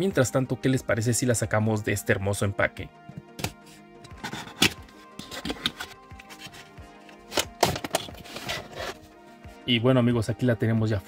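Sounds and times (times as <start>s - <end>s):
soft background music: 0.0s - 11.0s
cardboard clicks and knocks: 7.3s - 8.4s.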